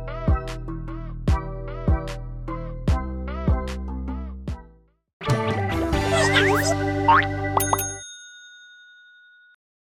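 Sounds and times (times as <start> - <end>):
bright bell-like ding: 7.6 - 9.6.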